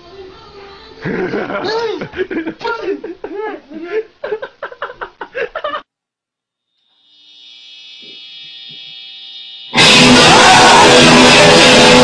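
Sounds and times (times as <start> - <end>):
guitar amplifier humming and whining: 6.6 - 12.0.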